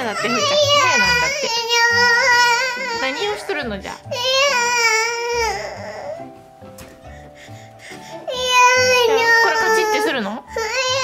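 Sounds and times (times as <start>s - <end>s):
child crying: 0.0s - 6.2s, 8.3s - 11.0s
soft background music: 0.0s - 11.0s.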